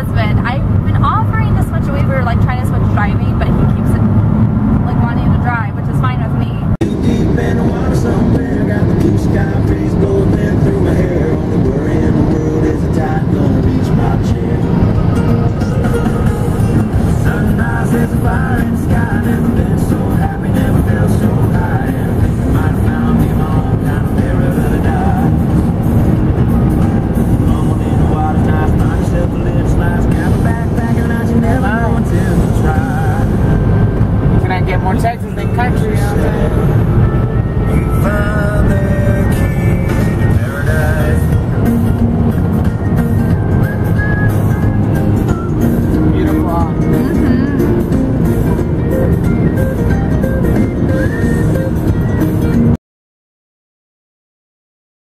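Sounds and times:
car road noise: 0.0s - 52.8s
song with singing: 6.8s - 34.4s, 35.2s - 51.8s.

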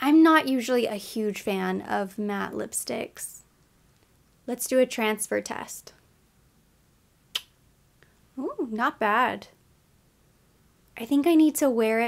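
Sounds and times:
lip smack: 7.3s - 7.6s.

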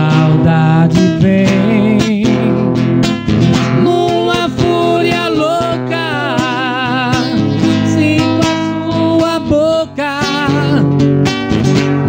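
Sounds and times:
men singing: 0.0s - 2.6s, 3.8s - 10.9s
acoustic guitar strummed: 0.0s - 12.0s.

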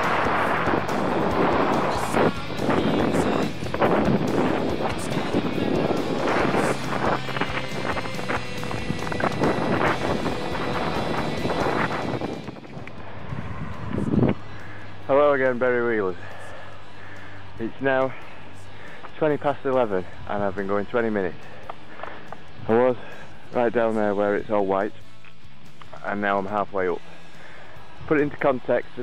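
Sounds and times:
wind buffeting microphone: 0.0s - 16.3s.

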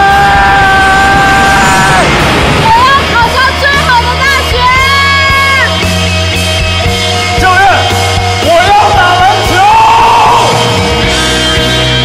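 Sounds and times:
young man shouting long cry: 0.0s - 2.1s, 8.6s - 10.6s
backing music: 0.0s - 12.0s.

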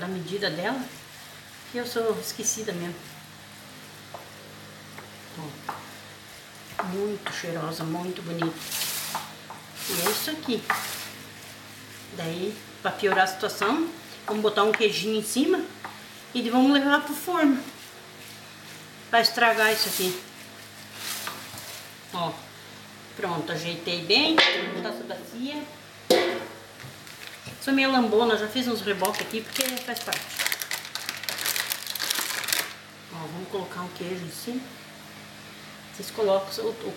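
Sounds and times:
steady low hum: 0.0s - 36.9s
wooden spoon scraping wet mixture: 5.5s - 22.1s.

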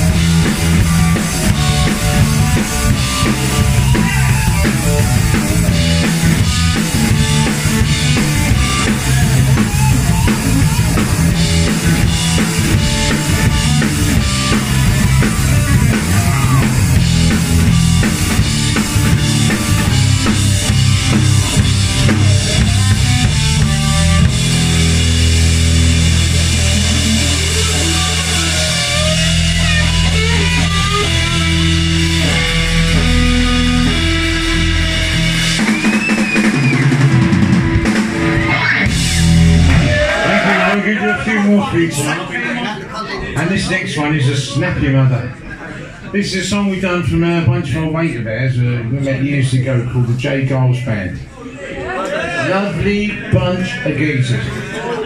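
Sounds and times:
punk rock band playing live: 0.0s - 41.7s.

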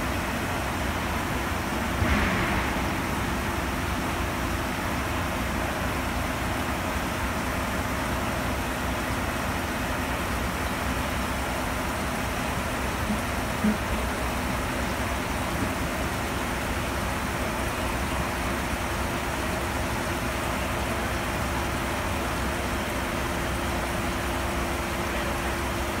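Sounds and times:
water rushing through pipes: 0.0s - 7.2s.

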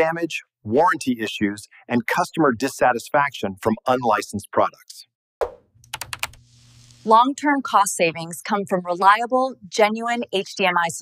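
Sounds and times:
soft high hiss: 6.4s - 7.2s.

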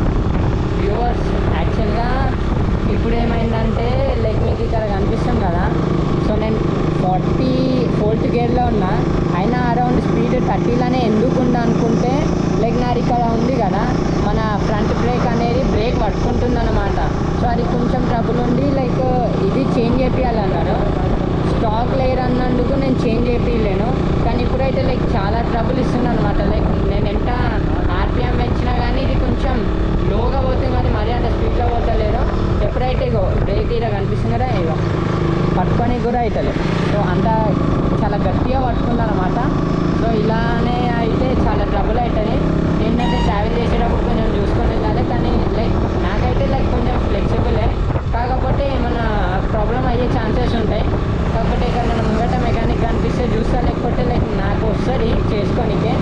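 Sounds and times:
wind rushing: 0.0s - 7.0s, 26.4s - 38.8s
motorcycle riding noise: 0.0s - 56.0s.

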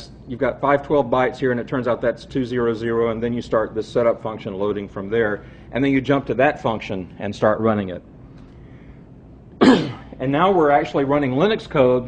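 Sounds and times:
man clearing his throat: 9.6s - 10.2s.

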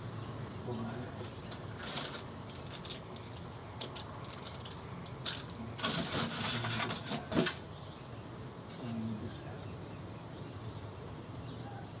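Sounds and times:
snacks rustling and scraping: 1.2s - 7.6s.

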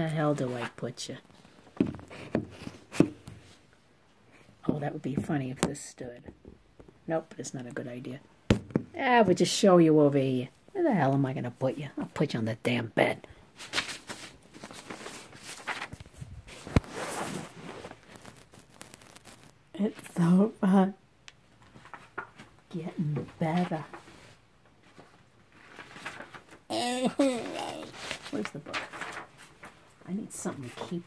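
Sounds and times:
fabric and bedding rustling: 13.5s - 19.6s.

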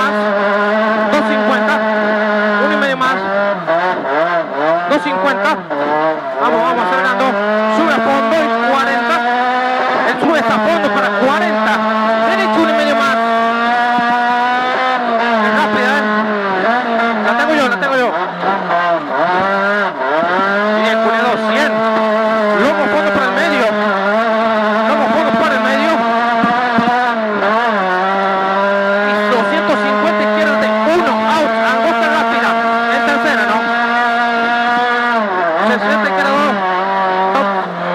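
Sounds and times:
rally car engine at high revs: 0.0s - 37.9s.

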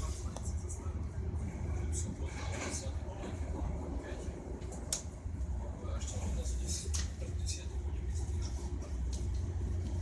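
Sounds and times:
train rumbling inside carriage: 0.0s - 10.0s.

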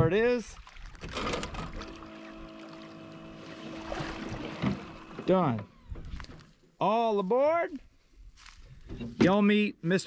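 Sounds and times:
hydraulic pump humming: 1.0s - 6.8s.

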